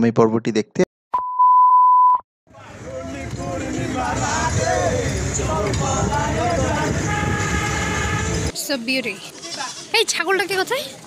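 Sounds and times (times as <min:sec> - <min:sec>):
indistinct voices: 0:02.5 - 0:07.1
loud steady rumble: 0:02.5 - 0:08.5
goat bleating: 0:09.4 - 0:09.9.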